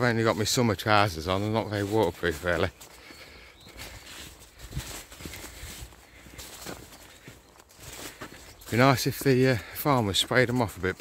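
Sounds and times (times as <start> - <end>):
footsteps on earth path: 0.0 - 11.0
legs rustling through plants: 0.0 - 11.0.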